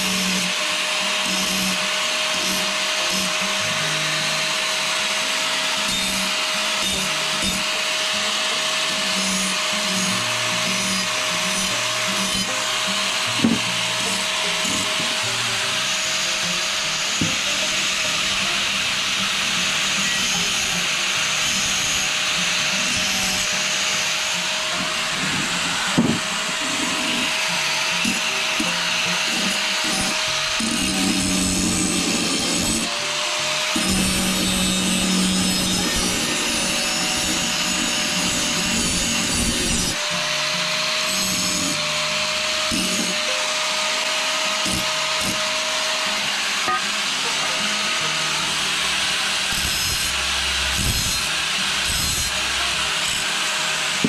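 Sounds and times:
angle grinder grinding steel: 0.0s - 54.0s.

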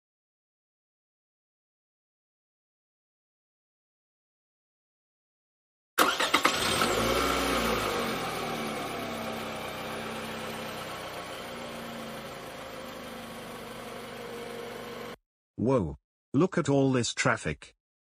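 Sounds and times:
cartoon car engine starting and revving: 6.0s - 15.2s.

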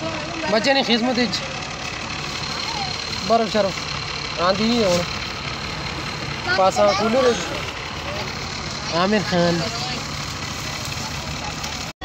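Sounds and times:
voices on crowded bus: 0.0s - 11.9s
bus engine idling: 0.0s - 12.0s.

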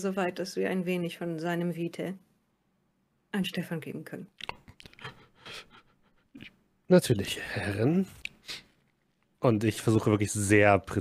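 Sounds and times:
man speaking: 6.4s - 8.3s, 9.4s - 11.0s.

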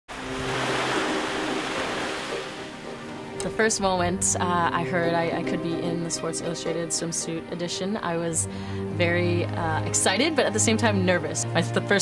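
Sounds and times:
waves breaking: 0.1s - 3.4s.

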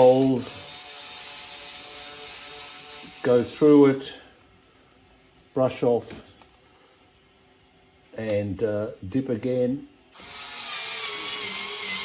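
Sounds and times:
cordless screwdriver motor running: 10.2s - 12.0s.

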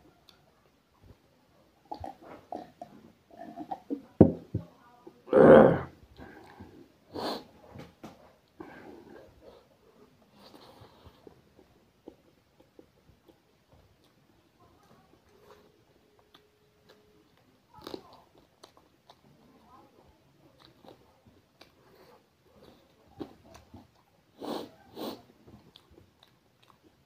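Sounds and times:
person chewing food: 1.9s - 4.1s, 8.4s - 19.7s, 20.4s - 27.0s.

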